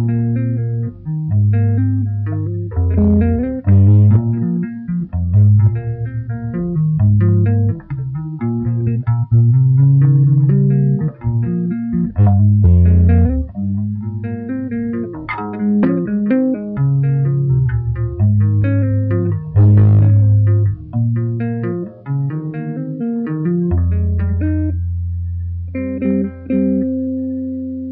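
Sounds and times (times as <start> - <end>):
electric bass tapping: 0.0 - 27.9.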